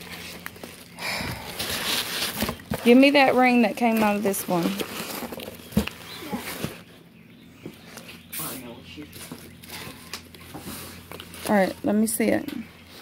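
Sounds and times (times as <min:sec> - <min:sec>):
rustling of packing peanuts: 0:00.0 - 0:06.9, 0:08.6 - 0:13.0.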